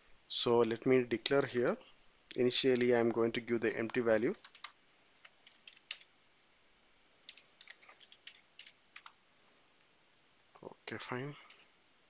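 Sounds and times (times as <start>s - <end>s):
computer keyboard typing: 3.8s - 6.1s, 7.2s - 9.2s.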